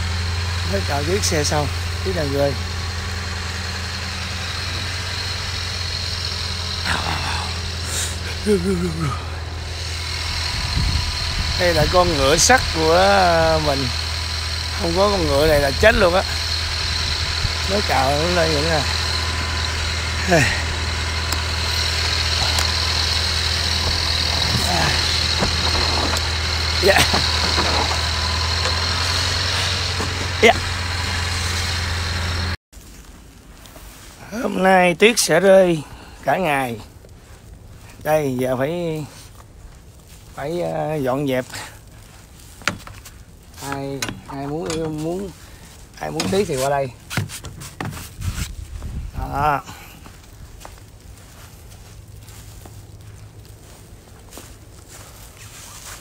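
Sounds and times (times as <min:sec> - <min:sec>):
truck engine idling: 0:00.0 - 0:32.6, 0:34.7 - 0:56.0
snow brush scraping car: 0:00.0 - 0:56.0.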